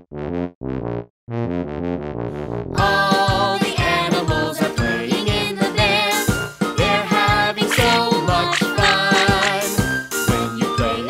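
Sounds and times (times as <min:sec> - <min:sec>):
tuba playing short low notes: 0:00.0 - 0:02.7.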